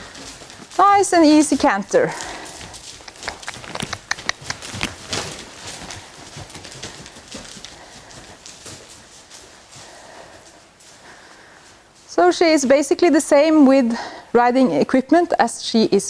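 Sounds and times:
horse hoofbeats cantering: 0.0s - 13.6s.

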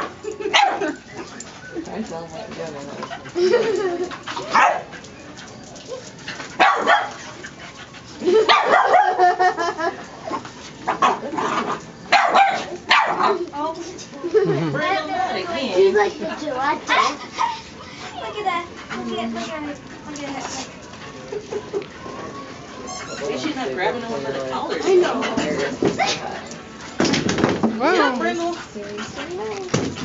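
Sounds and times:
puppies barking and yipping: 0.0s - 2.2s, 3.1s - 13.6s.

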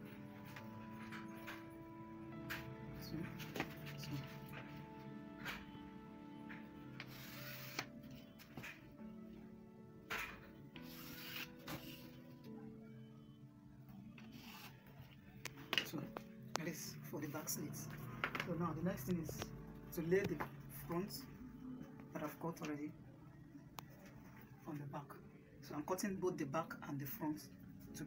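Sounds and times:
soft background music: 0.0s - 28.0s
ruler sliding on wooden table: 7.0s - 7.9s, 10.8s - 12.2s
cloth rustling and scraping: 10.8s - 12.4s.

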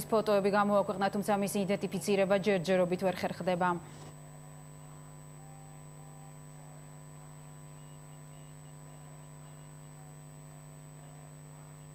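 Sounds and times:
faint high-pitched whine: 0.0s - 11.9s
steady electrical hum: 0.0s - 11.9s.

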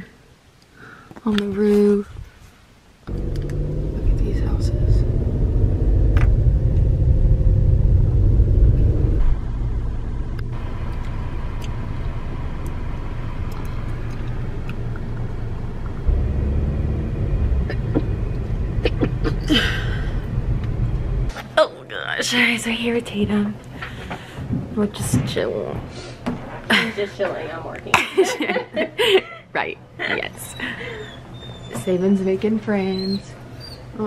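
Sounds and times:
car road and engine rumble: 3.1s - 21.4s.

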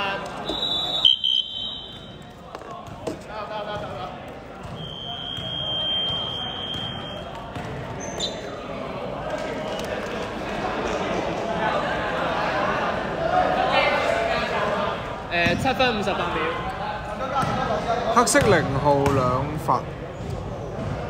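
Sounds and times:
players calling out: 0.0s - 10.2s
long high-pitched whistle: 0.5s - 2.2s, 4.8s - 7.2s
basketball bouncing: 1.9s - 4.8s.

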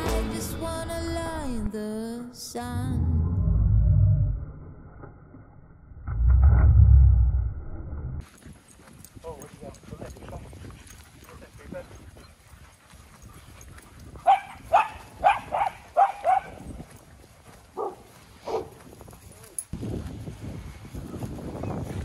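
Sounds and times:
dogs barking: 10.0s - 18.8s
faint barks and yips: 14.2s - 16.6s, 17.8s - 18.7s.

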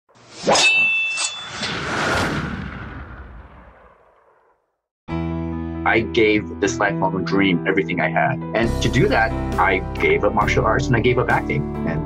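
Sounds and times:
whoosh: 0.2s - 4.6s.

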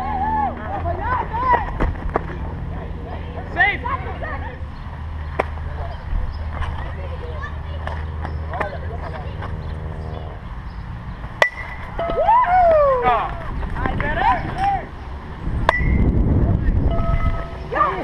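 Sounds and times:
players shouting: 0.0s - 1.8s, 11.7s - 15.0s, 17.1s - 18.0s
bat cracking ball: 11.4s - 12.2s, 15.6s - 16.1s
wind rumble on microphone: 12.2s - 17.7s.

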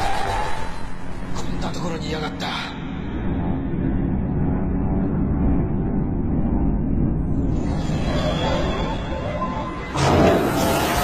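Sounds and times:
deep rumble: 1.2s - 11.0s.

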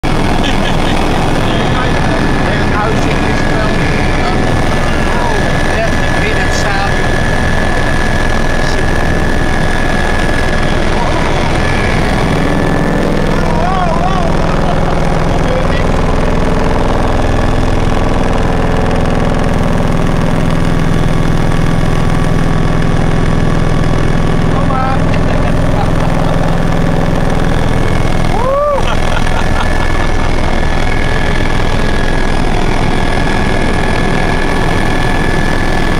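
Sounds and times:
deeper hum: 0.0s - 35.9s
helicopter rotor and engine noise: 0.0s - 35.9s
thin high whine: 0.0s - 35.9s.

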